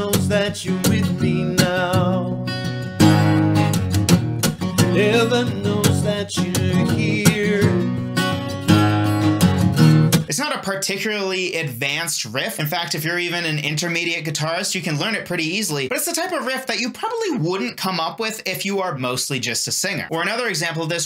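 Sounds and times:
man singing with vibrato: 0.0 - 2.6, 4.7 - 8.0
acoustic guitar riff: 0.0 - 10.4.

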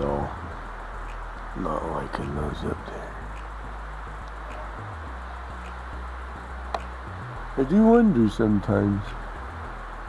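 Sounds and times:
sharp click: 6.7 - 7.0.

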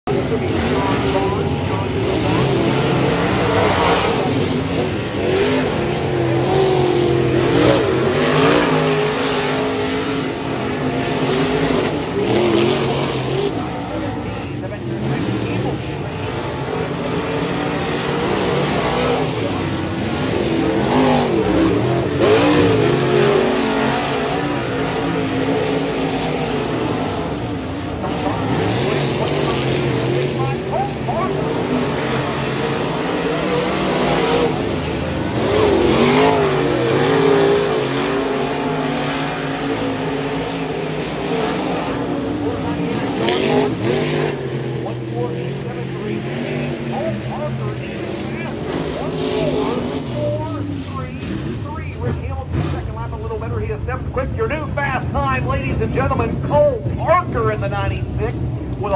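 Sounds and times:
race car engine: 0.0 - 58.9.

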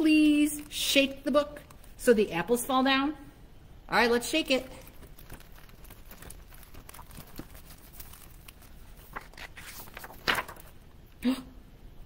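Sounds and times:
book shaken rustling and clicking: 4.7 - 10.9
page turning: 4.7 - 10.9.

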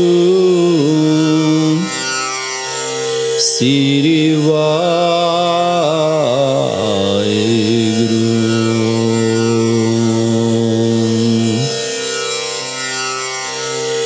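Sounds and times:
person chanting a mantra: 0.0 - 2.0, 3.4 - 11.8.

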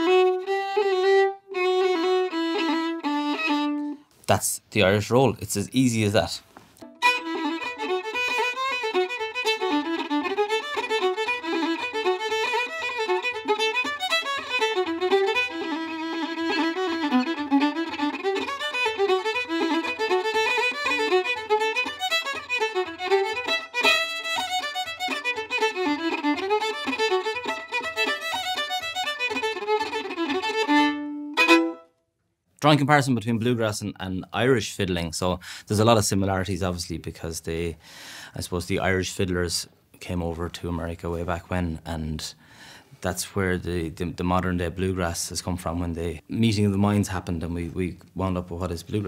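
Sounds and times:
fast fiddle tune: 0.0 - 4.0, 6.8 - 31.9.

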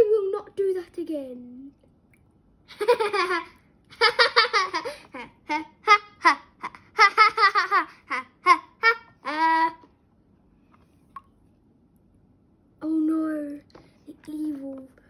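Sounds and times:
child laughing: 2.7 - 9.9.

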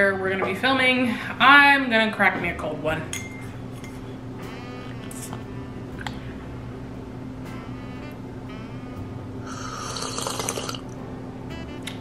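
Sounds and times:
liquid gurgling and gulping: 9.5 - 10.9.

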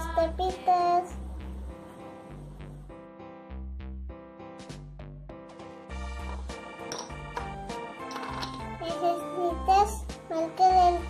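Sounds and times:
high child's voice: 0.0 - 1.2, 8.8 - 11.0
children's background music: 0.0 - 1.3, 4.2 - 11.0.

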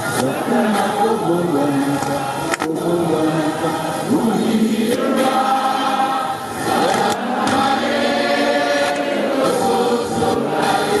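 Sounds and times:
voices singing together: 0.0 - 11.0.

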